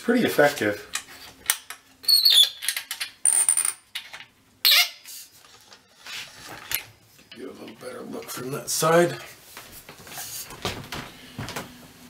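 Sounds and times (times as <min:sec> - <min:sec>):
metal clamp squeaking: 0:02.0 - 0:02.9.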